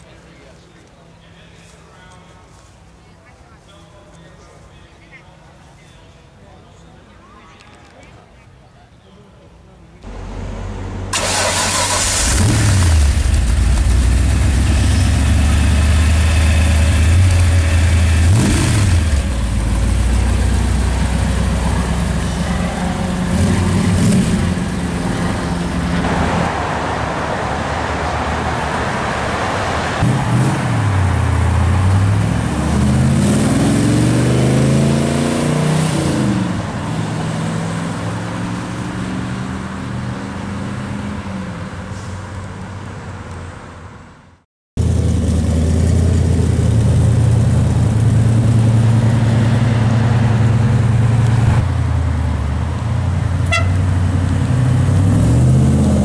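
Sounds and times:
car engine idling and revving: 10.0 - 43.5, 44.8 - 56.0
car accelerating away: 10.1 - 41.4, 44.8 - 56.0.

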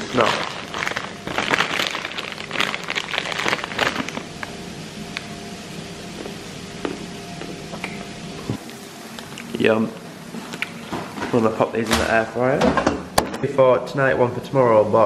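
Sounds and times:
plastic snack bag crinkling: 0.0 - 4.6.

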